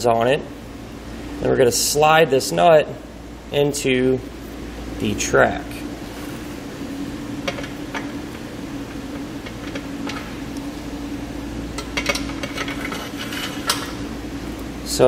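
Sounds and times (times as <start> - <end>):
metal nut clicking and scraping: 11.8 - 14.0.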